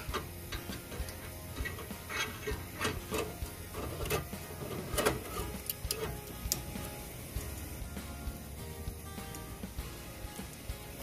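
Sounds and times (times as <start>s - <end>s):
background music: 0.0s - 11.0s
metal grill grates clinking: 0.0s - 11.0s.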